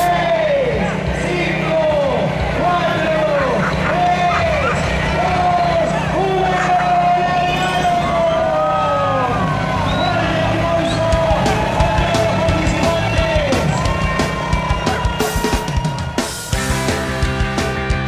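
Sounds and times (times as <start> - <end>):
rock music: 0.0 - 18.0
sirens wailing: 0.9 - 16.6.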